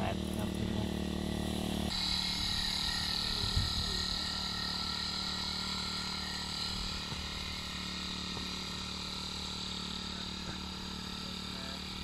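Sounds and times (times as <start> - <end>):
small engine running: 0.0 - 12.0.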